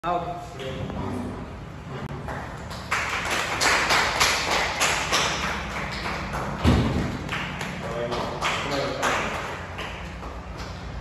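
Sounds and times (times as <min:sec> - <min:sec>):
people clapping: 0:02.1 - 0:11.0.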